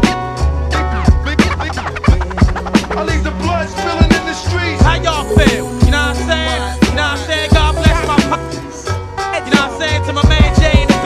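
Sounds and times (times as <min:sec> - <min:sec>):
hip hop beat: 0:00.0 - 0:11.0
turntable scratching: 0:00.0 - 0:11.0.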